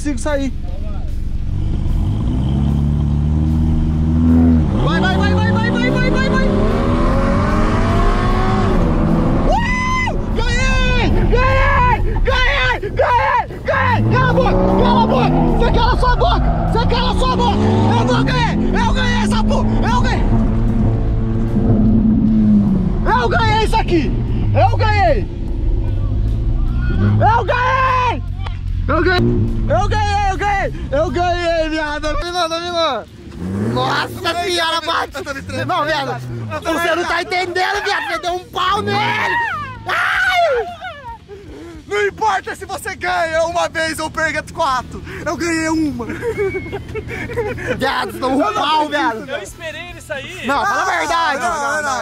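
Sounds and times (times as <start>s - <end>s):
car engine accelerating: 0.0s - 40.0s
people shouting: 9.3s - 20.2s, 26.6s - 28.5s, 36.7s - 41.9s, 50.4s - 52.0s.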